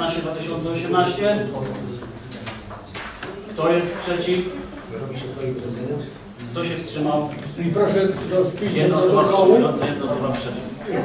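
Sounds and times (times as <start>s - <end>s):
man speaking: 0.0s - 2.4s, 3.6s - 11.0s.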